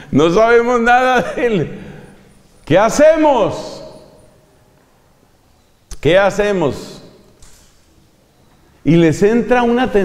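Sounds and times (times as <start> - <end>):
person speaking: 0.0 - 4.5, 8.8 - 10.0
faint steady hiss: 0.0 - 10.0.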